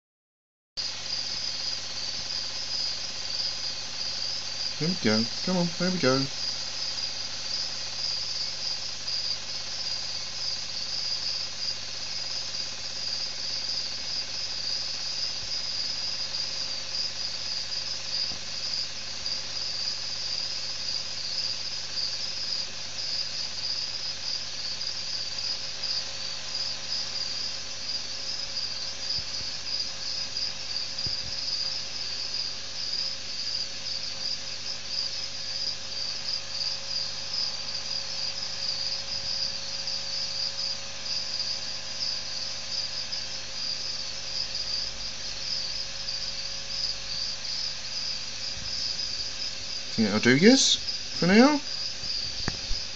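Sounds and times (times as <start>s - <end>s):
crickets chirping: 0.8s - 52.9s.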